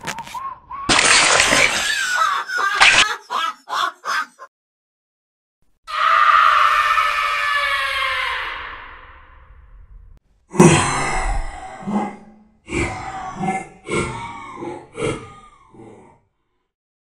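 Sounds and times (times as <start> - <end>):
high scream-like horror effect: 5.9 - 9.8
deep monster grunt: 10.5 - 16.3.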